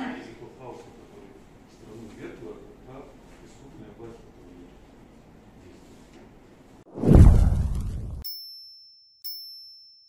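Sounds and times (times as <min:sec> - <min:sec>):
noisy whoosh: 0:06.9 - 0:08.2
high-pitched electronic dings: 0:08.3 - 0:10.0.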